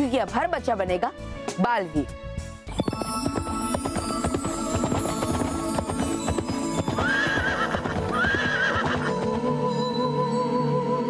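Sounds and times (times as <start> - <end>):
background music: 0.0 - 11.0
galloping horse hooves: 2.7 - 9.6
horse whinnying: 5.4 - 9.3.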